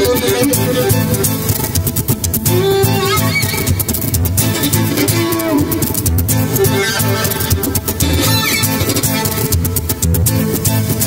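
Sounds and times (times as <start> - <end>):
strummed guitar chords: 0.0 - 11.0
violin melody with sliding notes: 0.0 - 11.0.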